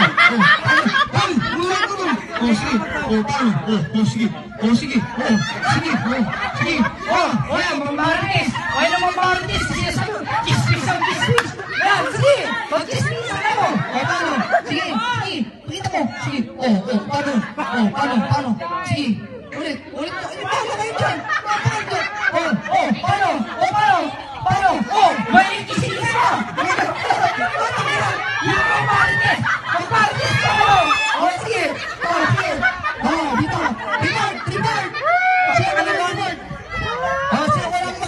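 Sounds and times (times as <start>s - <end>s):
people talking over one another: 0.0s - 38.0s.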